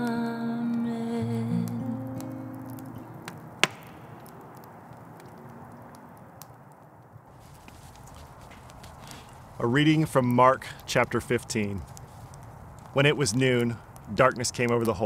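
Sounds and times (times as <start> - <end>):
person humming: 0.0 - 2.5
acoustic guitar: 0.0 - 3.6
low steady hiss: 0.0 - 15.0.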